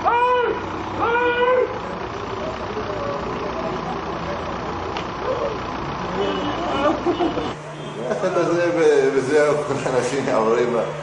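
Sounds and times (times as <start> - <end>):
street traffic noise: 0.0 - 11.0
vehicle engine running: 0.0 - 11.0.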